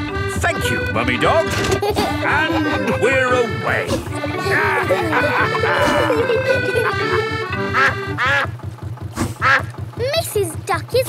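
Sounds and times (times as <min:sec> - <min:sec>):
light background music: 0:00.0 - 0:08.2
boat engine chugging: 0:00.0 - 0:11.0
cartoon duck quacking: 0:02.1 - 0:08.6, 0:09.3 - 0:09.8.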